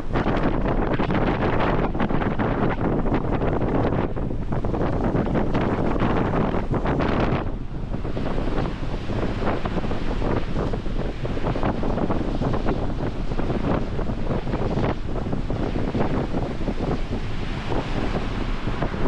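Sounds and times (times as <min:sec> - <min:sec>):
strong wind buffeting microphone: 0:00.0 - 0:19.0.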